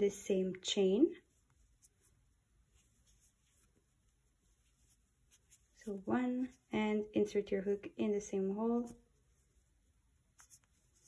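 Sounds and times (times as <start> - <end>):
yarn rustling on crochet hook: 0.0 - 11.0.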